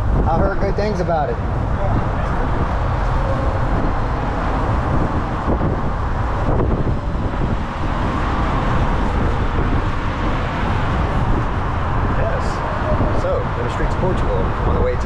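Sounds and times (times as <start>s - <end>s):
road noise: 0.0s - 15.0s
rushing air: 0.0s - 15.0s.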